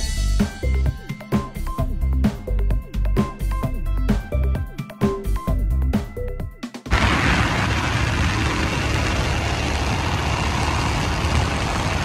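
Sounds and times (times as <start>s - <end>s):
motorcycle engine: 6.9s - 12.0s
road noise: 6.9s - 12.0s.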